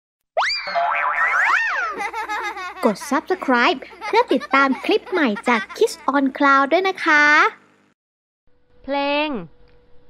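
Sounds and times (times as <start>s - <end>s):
cartoon boing sound effect: 0.4s - 2.1s.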